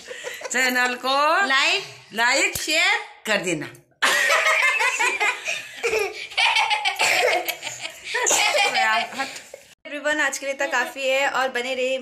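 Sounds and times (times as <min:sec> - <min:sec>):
women laughing: 0:00.0 - 0:00.7, 0:04.0 - 0:09.6, 0:10.5 - 0:11.2
women speaking: 0:00.5 - 0:03.9, 0:08.5 - 0:12.0.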